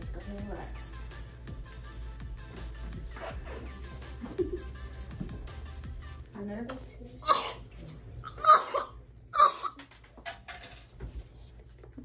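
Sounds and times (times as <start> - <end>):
background music: 0.0 - 6.4.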